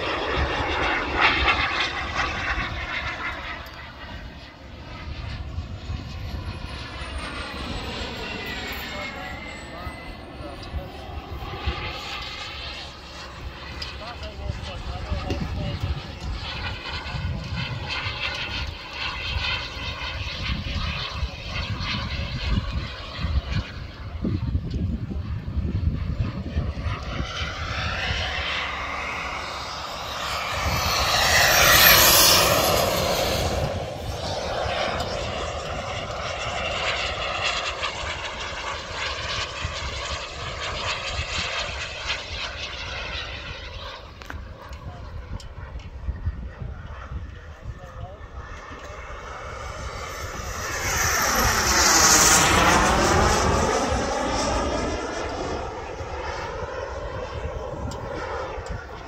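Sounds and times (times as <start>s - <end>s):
model jet high-pitched whine: 0.0s - 59.0s.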